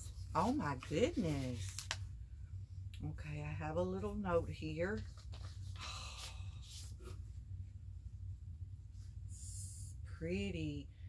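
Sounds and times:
paper rustling and crinkling: 0.0 - 2.1, 4.9 - 7.1
faint low hum: 0.0 - 11.0.

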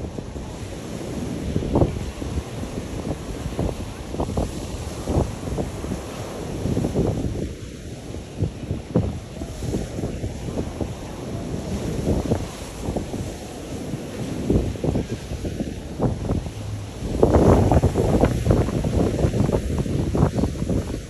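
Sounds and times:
small waves breaking on sand: 0.0 - 21.0
wind buffeting microphone: 0.0 - 21.0.

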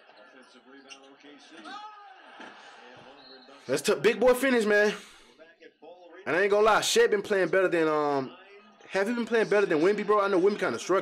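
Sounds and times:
man commentating: 3.6 - 11.0.

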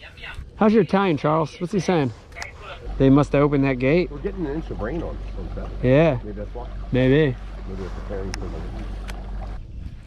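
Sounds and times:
boat motor humming: 0.0 - 10.0
quiet talk: 4.1 - 8.8.

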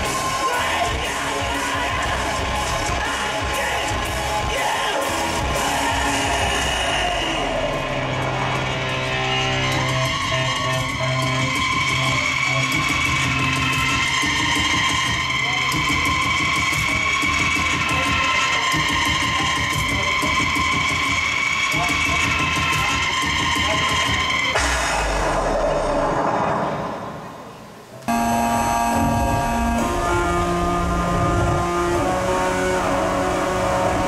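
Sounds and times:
live industrial band music: 0.0 - 26.0, 28.1 - 34.0.

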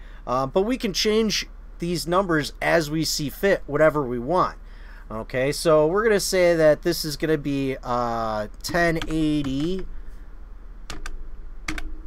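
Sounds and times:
steady low hum: 0.0 - 12.0
keyboard keys clicking: 8.7 - 9.9, 10.9 - 12.0.

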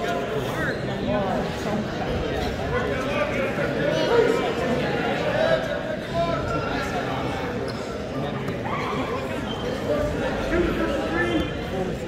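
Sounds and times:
voices calling out in a hall: 0.0 - 12.0.

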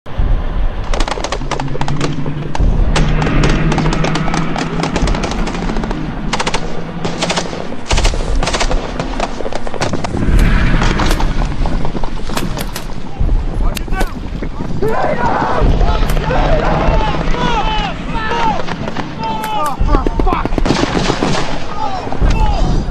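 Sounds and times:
rifle and machine-gun fire: 3.0 - 11.4, 19.8 - 21.8.

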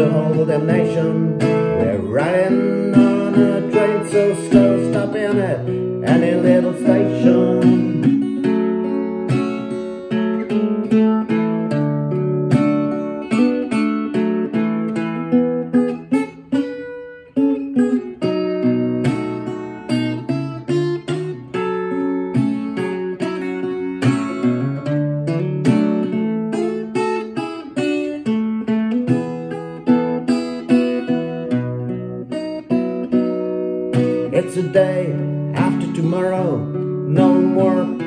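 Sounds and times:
acoustic guitar strumming chords: 0.0 - 38.0.

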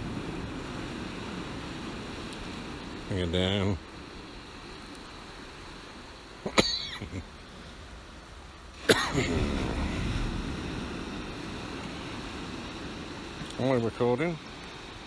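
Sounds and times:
person coughing: 6.5 - 7.2, 8.9 - 9.5.

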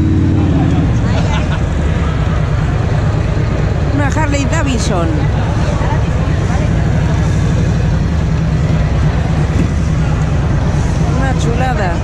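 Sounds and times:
motorcycle engine low rumble: 0.0 - 12.0.

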